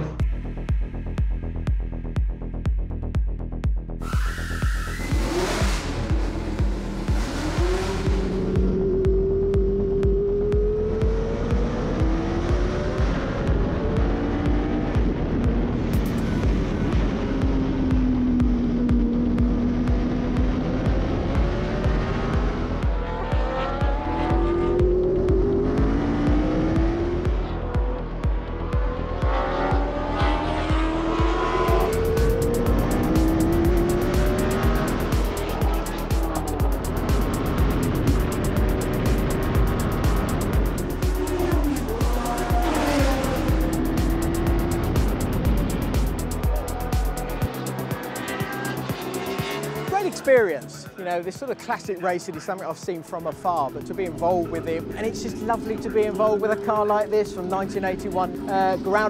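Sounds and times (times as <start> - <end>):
racing car engines revving: 0.0 - 0.6, 4.0 - 59.0
background music with steady beat: 0.0 - 59.0.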